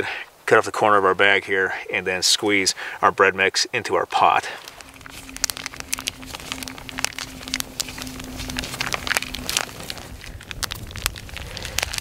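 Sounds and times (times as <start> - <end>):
campfire crackling and popping: 4.1 - 12.0
plastic bag crinkling: 4.6 - 12.0.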